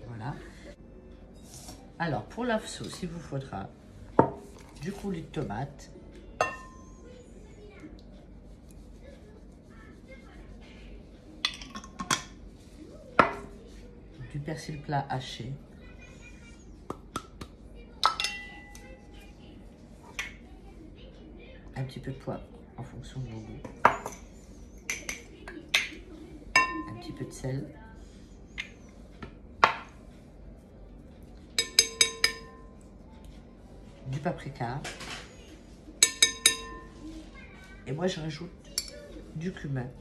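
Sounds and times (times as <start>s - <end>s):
glass bowl clinking: 6.4s - 7.0s, 18.0s - 18.9s, 23.8s - 24.3s, 26.6s - 27.1s, 31.6s - 32.8s, 36.0s - 37.0s, 38.8s - 39.0s.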